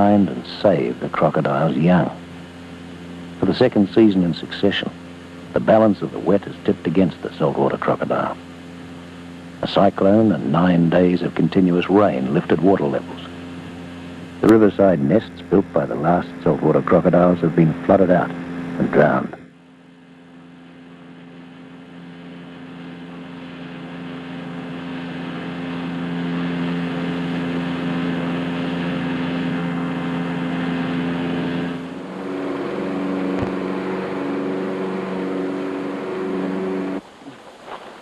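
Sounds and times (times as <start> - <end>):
outboard engine running: 0.0 - 38.0.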